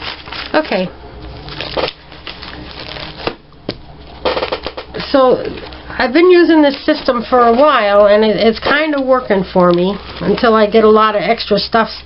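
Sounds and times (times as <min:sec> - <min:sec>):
binder pages turning: 0:00.0 - 0:03.4, 0:06.5 - 0:10.8
plastic sheet protectors crinkling: 0:00.0 - 0:03.4, 0:04.2 - 0:12.0.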